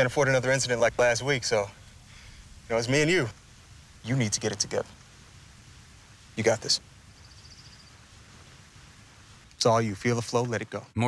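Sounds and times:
faint rapid bird trill: 0.0 - 11.0.

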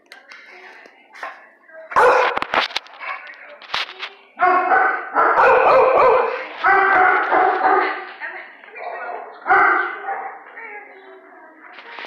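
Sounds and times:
dog barking and yelping: 4.4 - 8.0.

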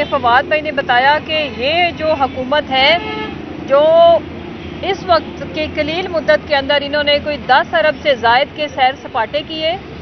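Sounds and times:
woman speaking: 0.0 - 3.0, 3.7 - 4.2, 4.8 - 9.8
background traffic noise: 0.0 - 10.0.

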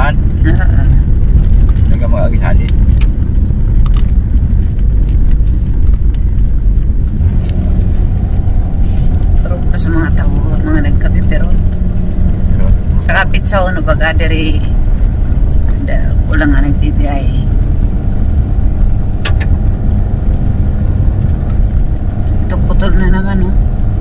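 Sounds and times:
car driving on concrete road: 0.0 - 24.0
light rattling clicks: 1.2 - 8.3, 18.7 - 20.0, 21.1 - 22.5.

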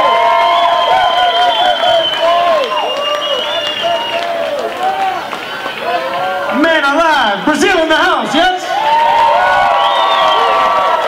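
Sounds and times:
man speaking over pa: 6.5 - 8.7.

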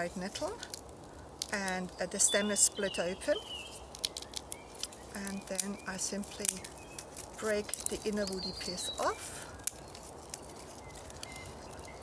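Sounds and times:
dry plant stem snapping: 0.2 - 2.0, 3.6 - 12.0
faint bird chirps: 1.8 - 7.1, 10.7 - 12.0.

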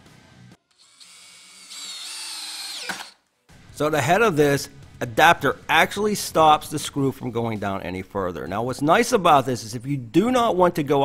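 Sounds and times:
cordless drill motor whine: 0.7 - 3.2.

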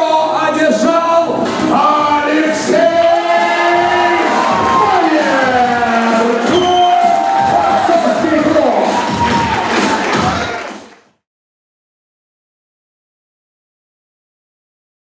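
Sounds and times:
song with singing: 1.1 - 10.6
crowd cheering: 2.3 - 11.1.

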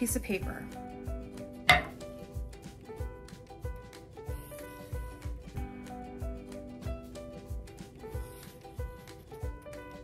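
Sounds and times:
background music with steady beat: 0.0 - 10.0
metal lid clicking on table: 1.7 - 2.0.

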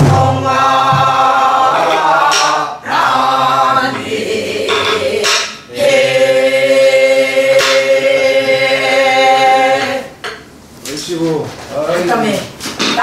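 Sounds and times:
barrel drum strokes: 0.0 - 2.7
group singing folk song in unison: 0.0 - 10.4.

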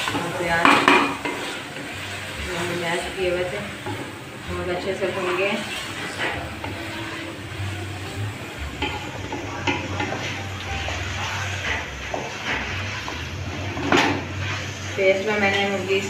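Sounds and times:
faint frying sizzle: 0.0 - 16.0
spatula scraping metal pot: 0.0 - 16.0.

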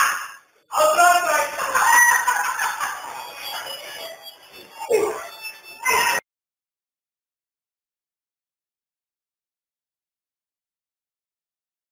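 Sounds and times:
faint background music: 0.0 - 6.2.

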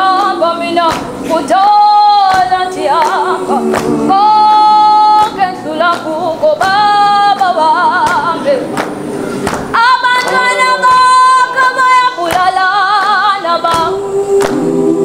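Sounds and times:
hand claps: 0.0 - 14.7
choir singing a cappella: 0.0 - 15.0.

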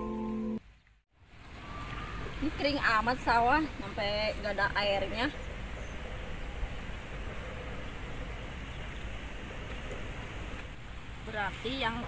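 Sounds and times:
even outdoor hiss: 0.0 - 12.0.

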